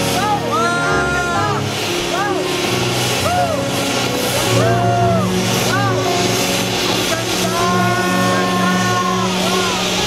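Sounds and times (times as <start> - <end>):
firework fountain hissing: 0.0 - 10.0
rising and falling tones: 0.0 - 10.0.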